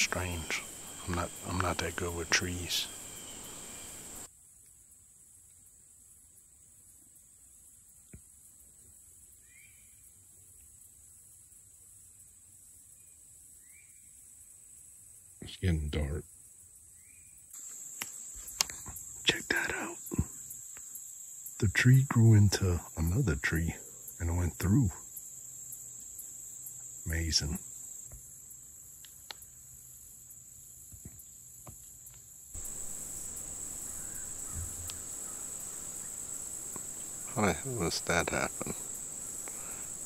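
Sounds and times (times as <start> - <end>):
crickets trilling: 0.0 - 40.0
insects high-pitched drone: 0.0 - 40.0
faint clicks: 29.0 - 29.5, 34.5 - 35.1, 36.7 - 37.1.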